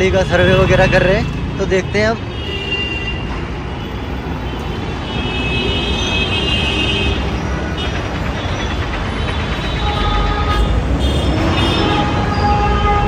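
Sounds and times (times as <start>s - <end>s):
traffic engines rumbling: 0.0s - 13.0s.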